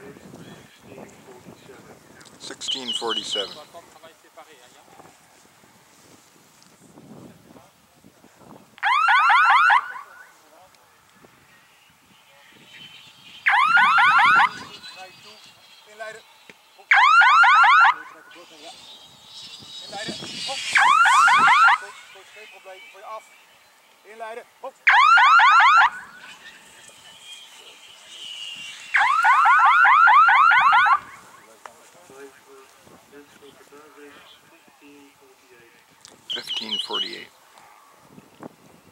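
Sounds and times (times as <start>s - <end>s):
electronic rising whoops: 20.6s - 21.8s.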